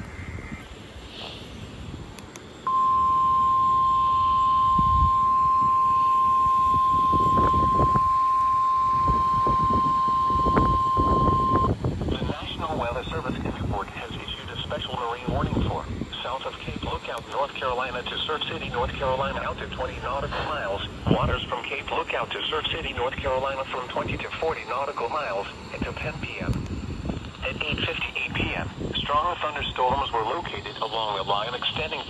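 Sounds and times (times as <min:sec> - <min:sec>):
steady high warning alarm tone: 0:02.6 - 0:11.8
synthesized voice reading: 0:10.6 - 0:26.6, 0:27.4 - 0:32.0.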